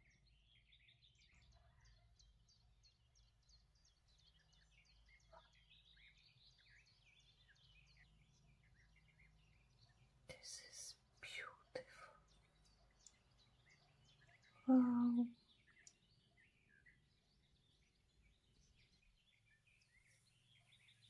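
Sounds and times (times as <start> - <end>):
faint bird chirps: 0.0 - 21.0.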